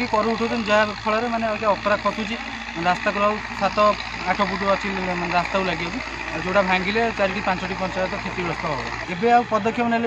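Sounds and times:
man speaking: 0:00.0 - 0:10.0.

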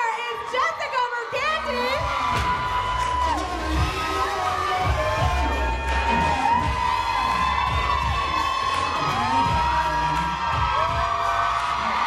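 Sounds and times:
audience cheering: 0:00.0 - 0:12.0
high-pitched screams and whoops: 0:00.0 - 0:12.0
music with low beat: 0:02.1 - 0:12.0.

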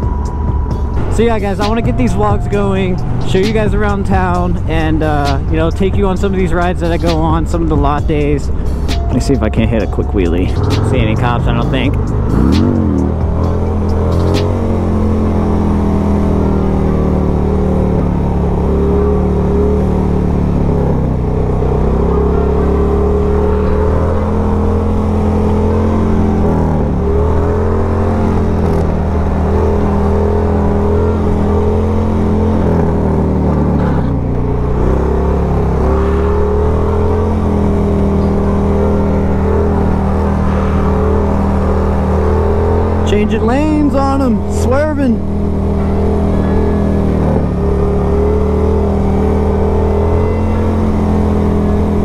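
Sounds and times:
motorcycle engine revving: 0:00.0 - 0:52.0.

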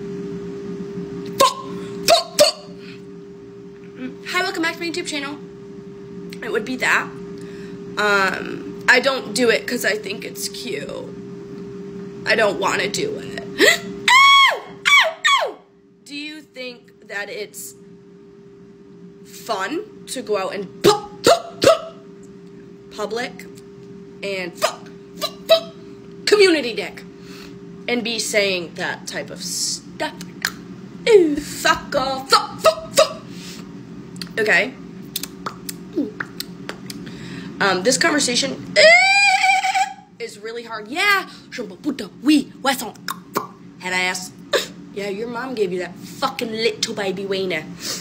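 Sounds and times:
steady low hum: 0:00.0 - 0:48.0
hiccup-like vocal tics: 0:21.2 - 0:21.9.

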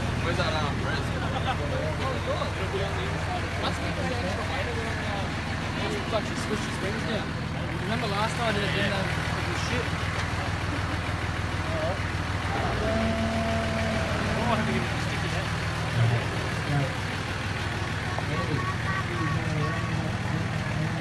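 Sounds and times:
truck engine idling: 0:00.0 - 0:21.0
voices: 0:00.0 - 0:21.0.

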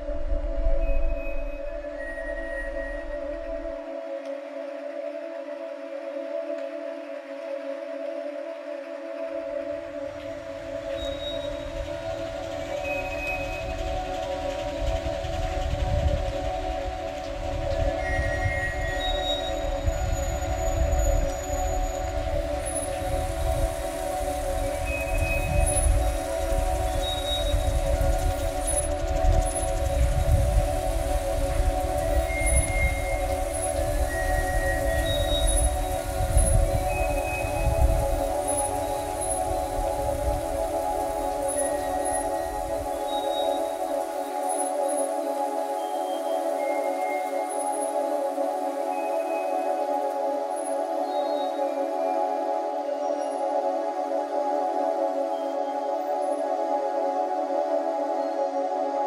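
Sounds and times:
ambient drone music: 0:00.0 - 0:59.0.

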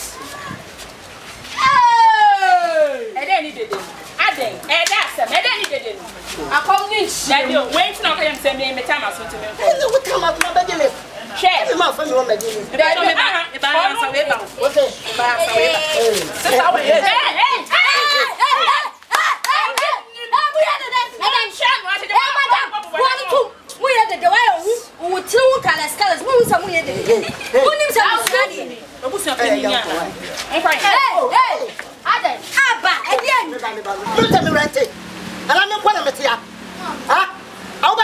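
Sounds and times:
women shouting in argument: 0:01.5 - 0:03.6, 0:15.1 - 0:26.9, 0:30.6 - 0:34.4
sharp hand claps: 0:04.8 - 0:05.8, 0:19.0 - 0:20.0, 0:28.2 - 0:28.5.

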